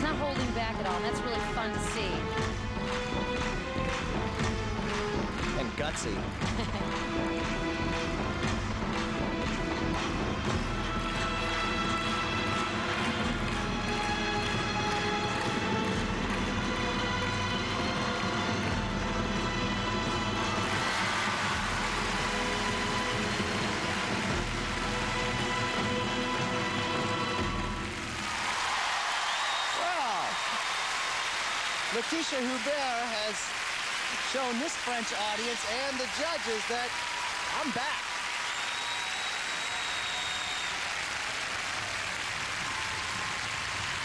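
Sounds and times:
crowd cheering and applauding: 0:00.0 - 0:44.0
program music in an arena: 0:00.0 - 0:44.0.

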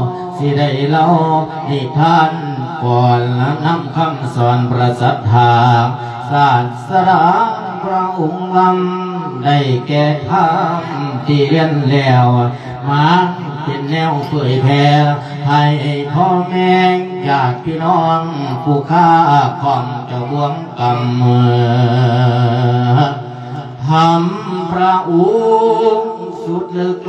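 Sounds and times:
man chanting into a microphone: 0:00.0 - 0:27.0.

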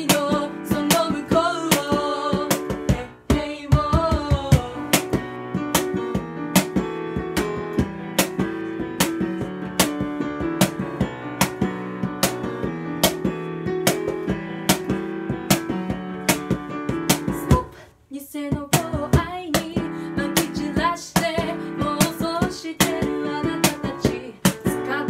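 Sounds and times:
cajon slaps: 0:00.0 - 0:17.6, 0:18.6 - 0:25.0
digital piano playing chords: 0:00.0 - 0:17.7, 0:18.9 - 0:25.0.

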